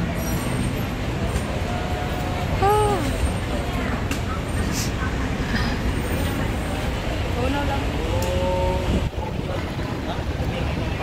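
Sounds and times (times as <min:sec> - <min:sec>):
faint voices: 0:00.0 - 0:11.0
road traffic rumble: 0:00.0 - 0:11.0.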